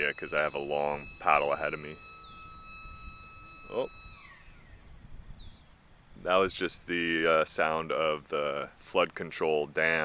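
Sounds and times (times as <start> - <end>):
gate machinery whining: 0.0 - 8.6.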